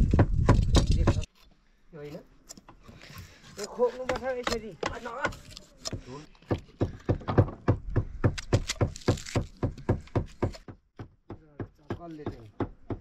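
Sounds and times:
knife chopping: 3.9s - 10.8s.

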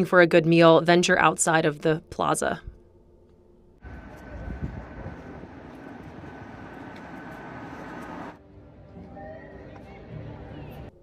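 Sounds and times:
car driving along road: 3.8s - 8.4s.

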